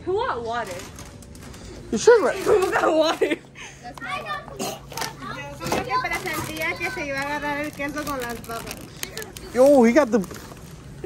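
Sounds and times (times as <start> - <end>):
children talking and chattering: 0.0 - 11.0.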